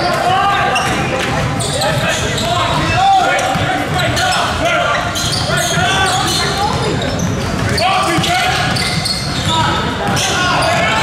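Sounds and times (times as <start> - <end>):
basketball bouncing on court: 0.0 - 11.0
people calling out: 0.0 - 11.0.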